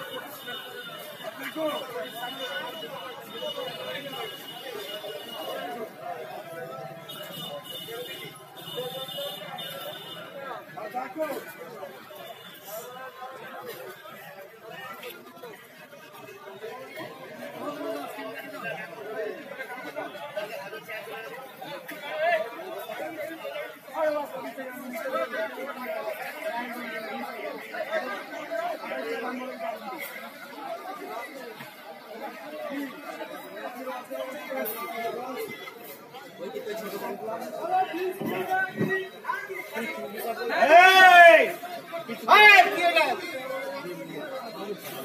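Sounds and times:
crowd of voices chattering: 0.0s - 45.0s.

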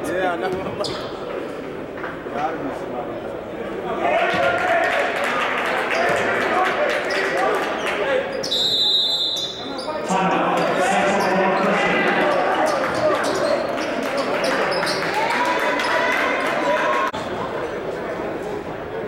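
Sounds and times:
shrill whistle: 8.4s - 9.7s
people talking: 9.6s - 19.0s.

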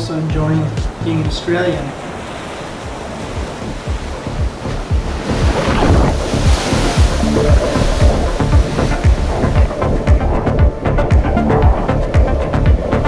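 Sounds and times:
music with low beat: 0.0s - 1.5s, 2.8s - 13.0s
ocean surf rushing: 0.0s - 13.0s.

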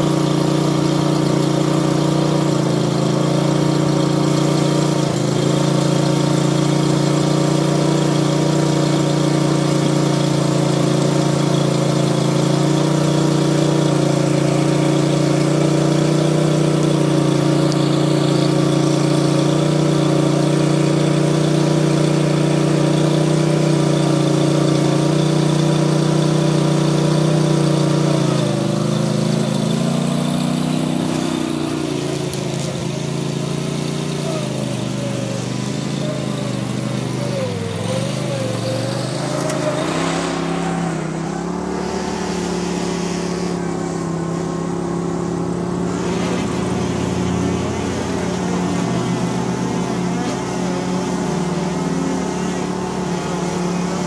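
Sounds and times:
lawn mower engine running: 0.0s - 54.0s.

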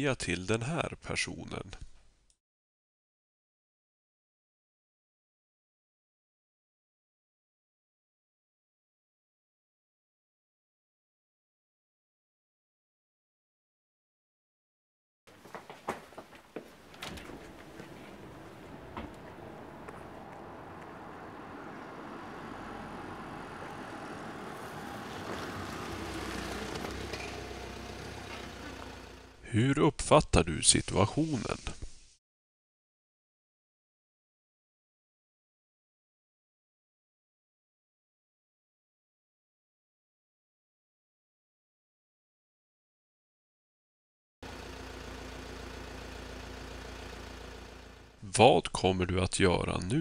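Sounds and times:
van engine and tyre noise: 15.4s - 29.5s, 44.4s - 48.3s.

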